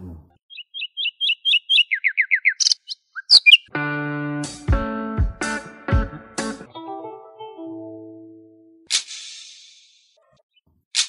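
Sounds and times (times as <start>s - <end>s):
bird chirping: 0.0s - 3.7s
plucked guitar music: 3.7s - 8.8s.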